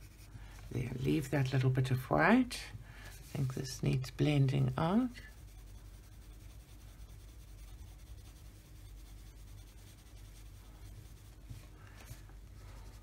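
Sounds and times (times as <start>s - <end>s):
pencil scratching on paper: 4.2s - 11.8s.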